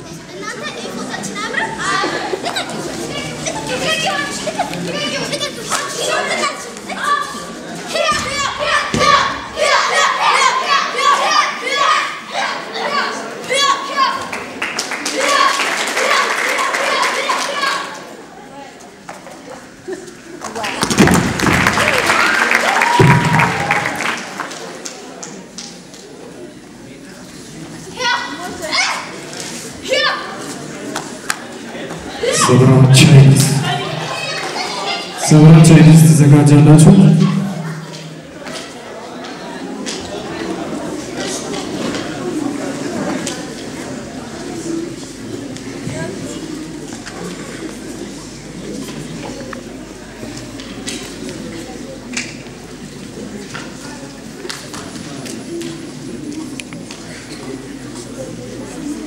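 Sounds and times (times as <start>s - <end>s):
children chattering in a hall: 0.0s - 59.0s
children shouting kihap yells: 8.0s - 14.2s.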